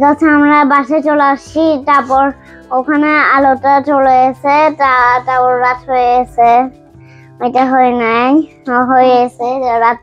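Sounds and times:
young child singing: 0.0s - 6.7s, 7.4s - 10.0s.

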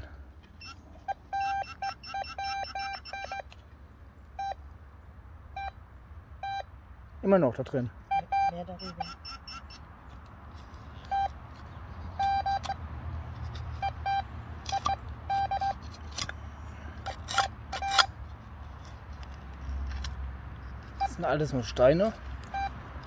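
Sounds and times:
metal detector beeps: 0.6s - 3.6s, 4.4s - 4.6s, 5.5s - 5.8s, 6.4s - 6.7s, 8.0s - 9.8s, 11.0s - 11.4s, 12.1s - 12.8s, 13.7s - 15.9s, 17.0s - 18.2s, 20.9s - 22.8s.

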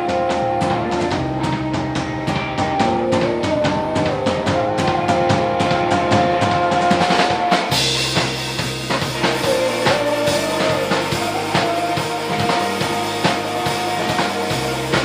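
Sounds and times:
cymbals: 0.0s - 15.0s
drum kit beat: 0.0s - 15.0s
electric guitar: 0.0s - 15.0s.

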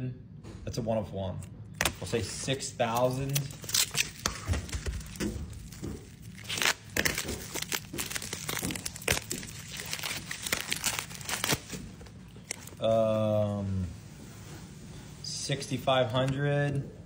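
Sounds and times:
bubble wrap crackling: 1.8s - 13.2s.

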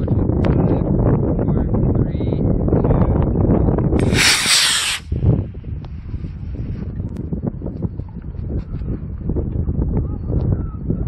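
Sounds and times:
wind rumbling on microphone: 0.0s - 11.0s
model rocket motor hissing: 4.0s - 5.1s.

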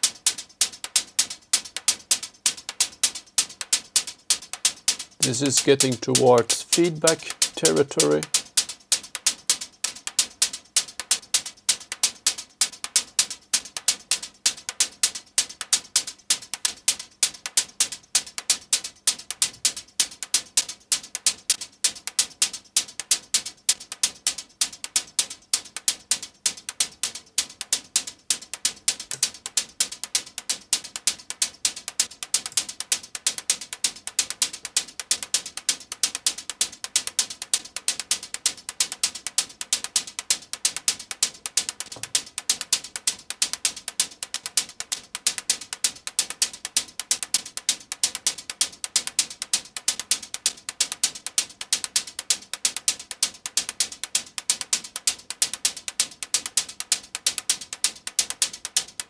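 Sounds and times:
synthesized hi-hat loop: 0.0s - 59.0s.

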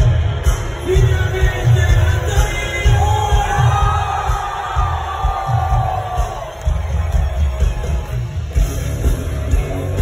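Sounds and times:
drum and bass beats: 0.0s - 10.0s
live rock band playing: 0.0s - 10.0s
crowd cheering: 1.7s - 10.0s.

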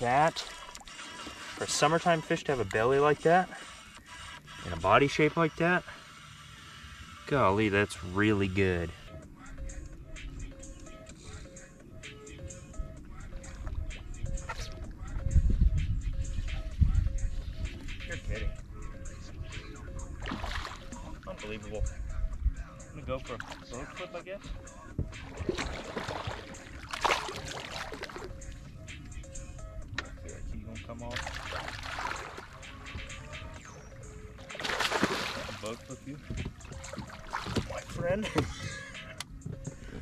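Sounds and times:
water splashing: 0.0s - 2.2s, 20.2s - 21.3s, 25.2s - 28.4s, 31.1s - 32.9s, 34.5s - 38.1s
background music with voice: 0.0s - 40.0s.

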